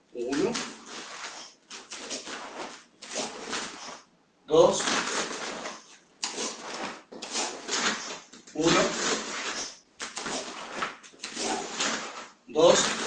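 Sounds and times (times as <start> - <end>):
fabric rustling and swishing: 0.2 - 4.1, 4.7 - 13.0.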